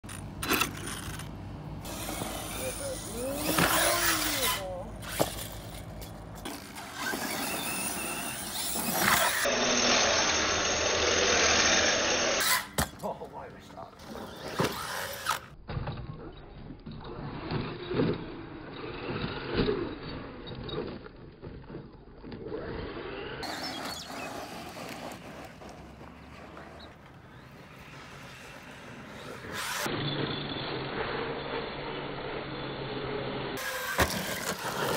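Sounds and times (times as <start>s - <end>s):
tyres on dirt: 0.0s - 31.5s, 33.6s - 34.9s
electric motor whining: 1.8s - 5.3s, 6.7s - 12.7s
voices: 2.3s - 5.1s.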